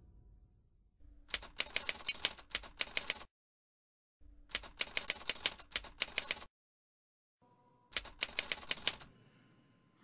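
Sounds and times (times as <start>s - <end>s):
runs of sharp clicks: 1.3s - 3.3s, 4.5s - 6.5s, 8.0s - 9.1s.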